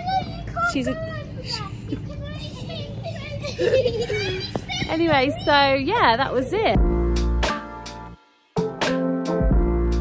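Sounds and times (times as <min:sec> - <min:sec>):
children calling and chattering: 0:00.0 - 0:06.6.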